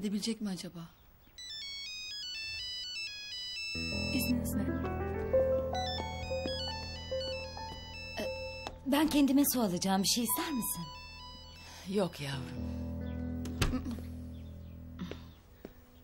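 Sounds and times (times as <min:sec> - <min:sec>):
phone ringtone electronic melody: 0:01.4 - 0:13.4
low sustained chords: 0:03.8 - 0:08.6, 0:09.6 - 0:16.0.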